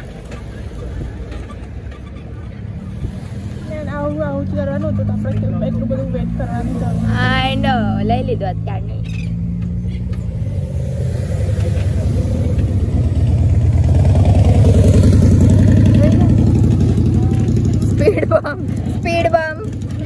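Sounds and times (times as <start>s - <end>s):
car engine humming: 0.0s - 20.0s
road noise: 0.0s - 20.0s.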